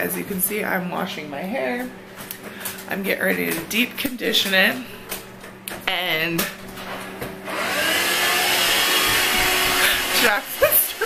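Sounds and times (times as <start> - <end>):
electric fan whooshing: 0.0 - 11.0.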